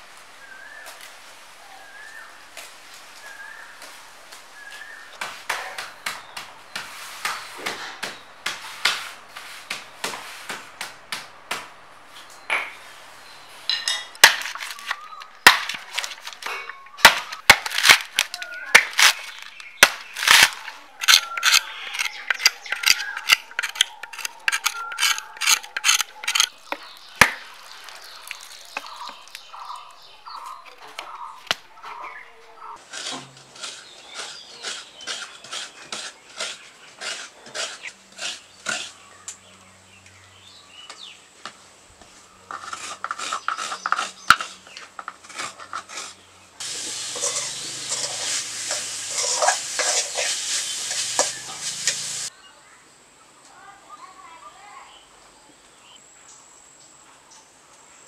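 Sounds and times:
machete chopping coconut husk: 0:04.7 - 0:11.7, 0:14.2 - 0:29.5
steel wok clattering: 0:46.6 - 0:52.3.

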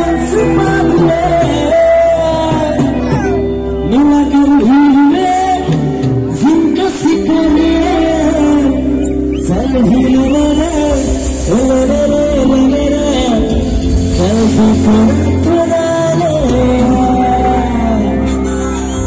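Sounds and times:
heavy bass: 0:00.0 - 0:19.0
person singing: 0:00.0 - 0:19.0.

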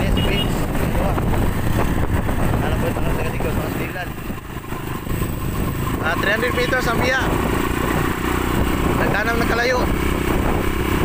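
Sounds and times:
vehicle engine running: 0:00.0 - 0:11.0
wind buffeting microphone: 0:00.0 - 0:11.0.

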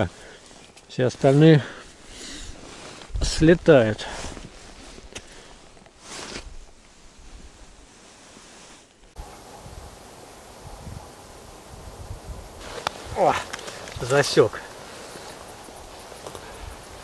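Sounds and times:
rustling: 0:00.0 - 0:03.4, 0:04.1 - 0:17.0
faint wind hiss: 0:00.0 - 0:17.0.

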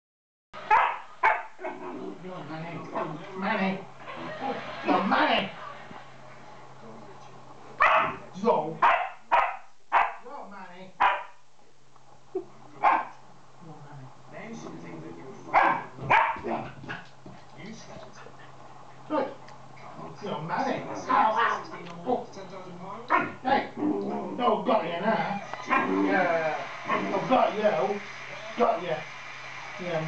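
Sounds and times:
dog barking: 0:00.7 - 0:01.8, 0:07.8 - 0:08.2, 0:08.8 - 0:10.3, 0:11.0 - 0:11.4, 0:12.8 - 0:13.2, 0:15.5 - 0:17.0, 0:23.1 - 0:23.4, 0:25.6 - 0:26.0.

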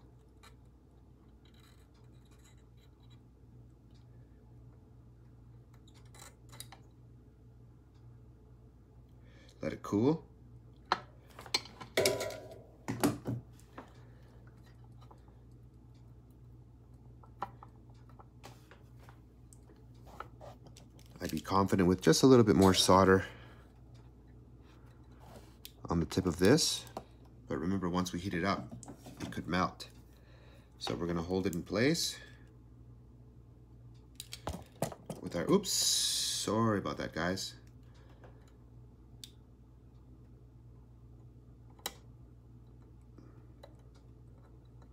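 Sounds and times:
faint low hum: 0:00.0 - 0:44.9.

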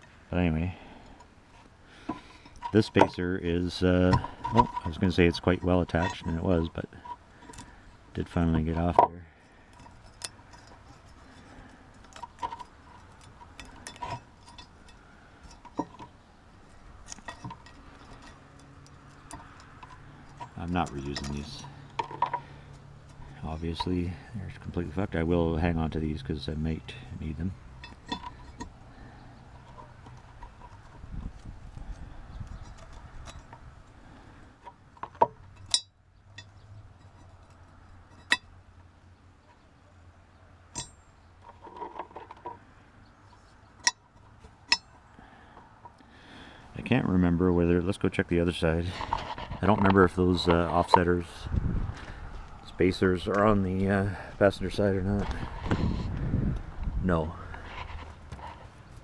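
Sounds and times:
metal parts clinking: 0:02.0 - 0:07.8, 0:08.6 - 0:24.4, 0:26.8 - 0:33.8, 0:34.6 - 0:38.5.

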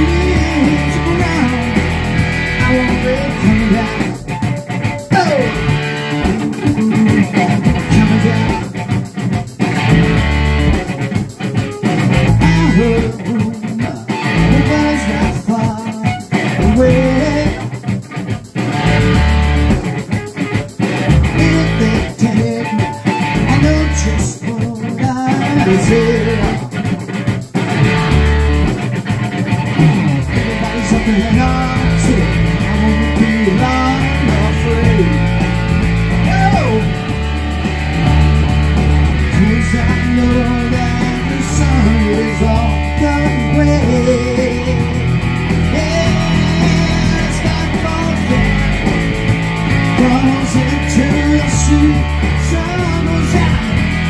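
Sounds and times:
bass guitar: 0:00.0 - 0:54.0
electric guitar playing: 0:00.0 - 0:54.0
sliding guitar note: 0:07.4 - 0:08.7, 0:09.7 - 0:10.9, 0:29.4 - 0:50.8.

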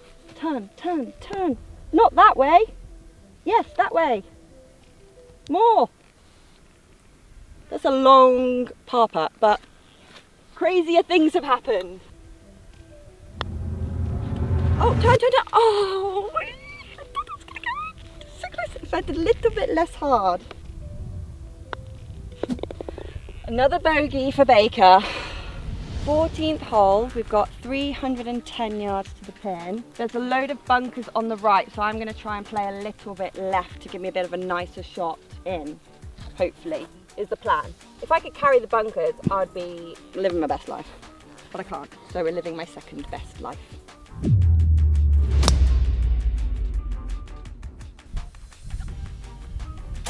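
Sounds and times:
background music: 0:00.0 - 0:09.4, 0:10.3 - 0:50.0
low wind rumble: 0:00.6 - 0:05.6, 0:12.0 - 0:29.2, 0:44.1 - 0:50.0
putter tapping golf ball: 0:22.4 - 0:23.0.

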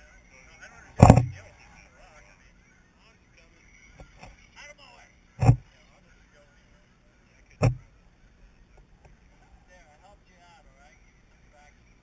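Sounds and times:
sharp thump: 0:01.0 - 0:01.4, 0:05.4 - 0:05.6.

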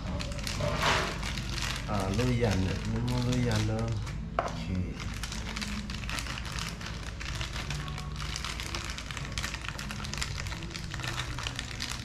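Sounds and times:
plastic packaging crinkling: 0:00.0 - 0:12.0.

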